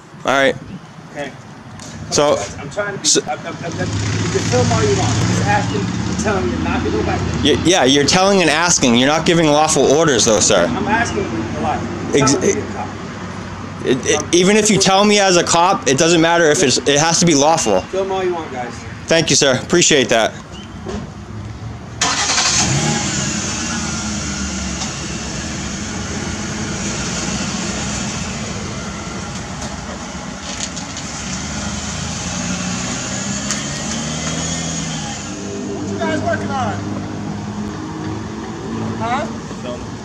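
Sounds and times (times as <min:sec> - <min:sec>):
car engine starting and running: 0:03.2 - 0:10.7, 0:21.8 - 0:39.2.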